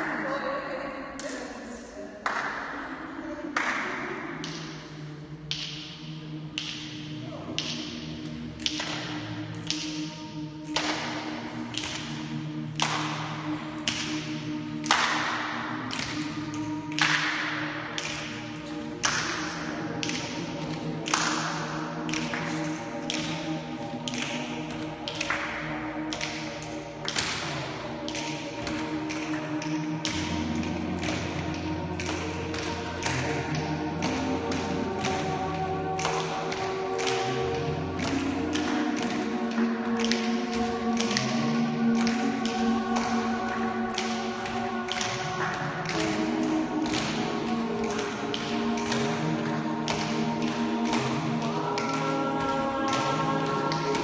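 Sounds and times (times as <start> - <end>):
people clapping in rhythm: 0.0 - 0.5, 1.1 - 54.0.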